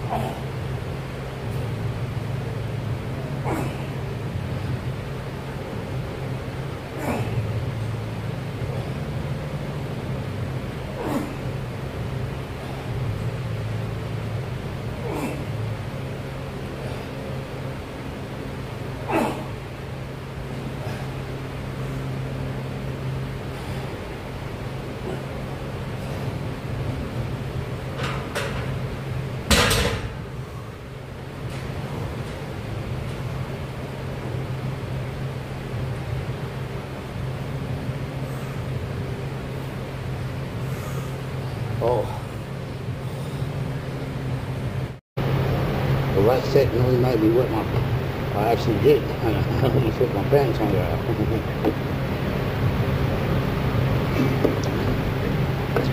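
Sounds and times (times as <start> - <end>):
steady low hum: 0.0 - 55.9.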